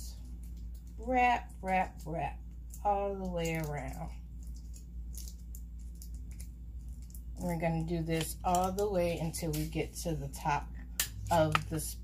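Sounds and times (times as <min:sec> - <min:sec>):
steady low hum: 0:00.0 - 0:12.0
tape crinkling: 0:02.6 - 0:07.5.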